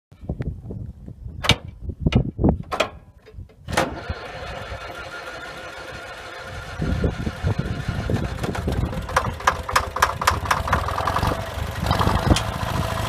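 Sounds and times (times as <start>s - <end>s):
loader engine firing unevenly: 3.7s - 13.0s
sharp engine pops: 8.4s - 10.9s.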